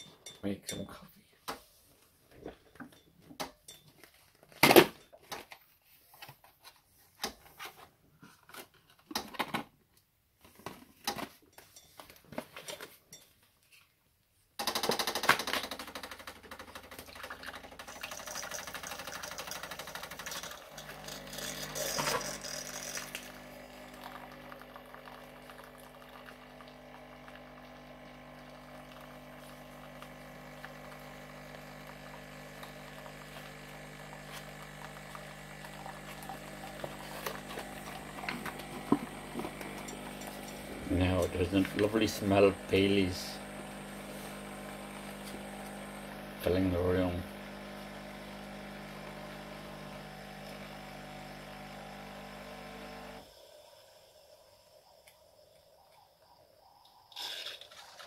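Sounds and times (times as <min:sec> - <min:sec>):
coffee machine pump hum: 0:15.7 - 0:58.0
liquid spraying into a mug: 0:17.2 - 0:46.6.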